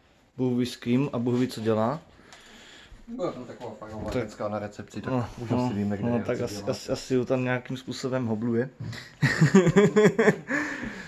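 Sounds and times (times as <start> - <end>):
man laughing: 9.2 - 10.8.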